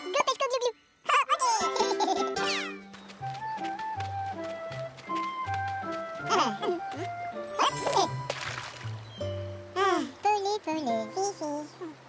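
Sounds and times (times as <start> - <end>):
squeaky cartoon voices: 0.0 - 1.8, 7.5 - 8.2
simple background music: 1.6 - 9.8.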